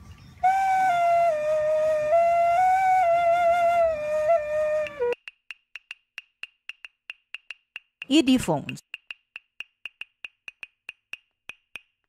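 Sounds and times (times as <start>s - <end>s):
light ticks with high ping: 5.2s - 8.1s, 8.7s - 11.9s.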